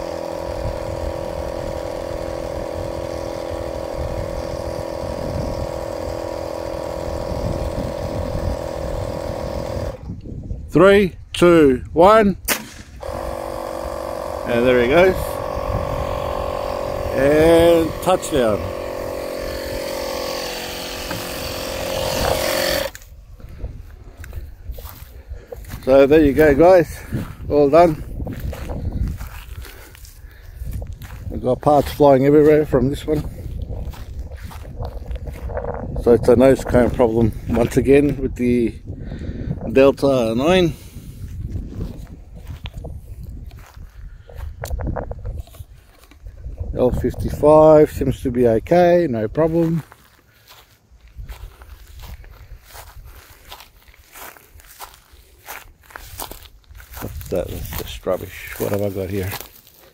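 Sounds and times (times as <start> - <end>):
steady mechanical hum: 0.0 - 59.9
wind rumble on microphone: 0.5 - 6.2, 7.0 - 13.0, 14.6 - 18.8, 21.9 - 48.8, 51.0 - 54.9, 55.8 - 58.2
short clicks and crunches: 12.5 - 23.2
footsteps through dry grass: 13.0 - 38.2, 40.7 - 47.1, 49.2 - 59.9.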